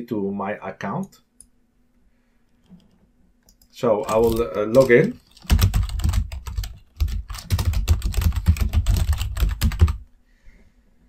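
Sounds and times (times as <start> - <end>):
fast typing on keyboard: 4.0 - 10.0.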